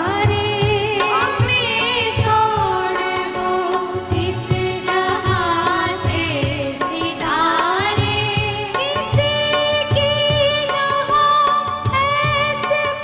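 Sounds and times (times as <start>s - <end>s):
steady drum beat: 0.0s - 11.2s
women singing film song: 0.0s - 13.0s.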